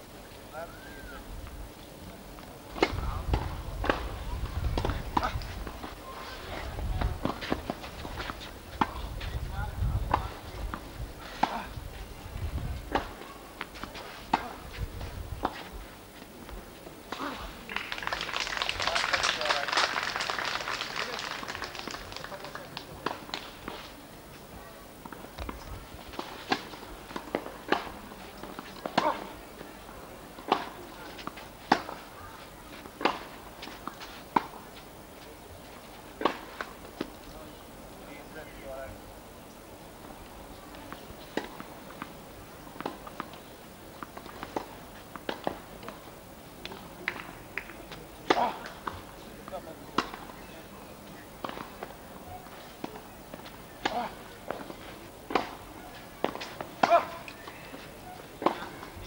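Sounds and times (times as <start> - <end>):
hazy noise: 0.0 - 59.0
tennis balls bouncing on court: 2.8 - 6.0, 7.0 - 9.1, 25.0 - 29.4, 30.3 - 32.1, 44.0 - 46.0, 46.6 - 50.5, 51.4 - 59.0
tennis balls struck with rackets: 7.0 - 9.0, 10.0 - 11.7, 12.8 - 14.7, 25.0 - 29.4, 30.3 - 32.1, 32.8 - 34.6, 46.6 - 50.4, 51.4 - 57.8, 58.4 - 59.0.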